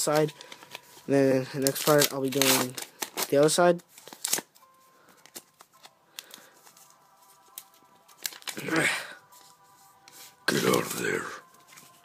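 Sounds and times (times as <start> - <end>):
cards crinkling and clicking: 0.0 - 8.8
paper card pack rustling: 0.0 - 12.0.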